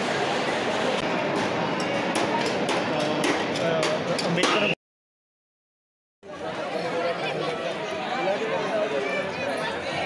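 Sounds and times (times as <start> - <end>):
crowd chatter: 0.0 - 4.8, 6.2 - 10.0.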